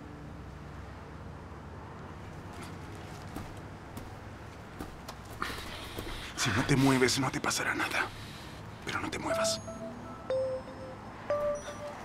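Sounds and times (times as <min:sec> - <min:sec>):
soft knocks and steps: 0:02.9 - 0:06.2.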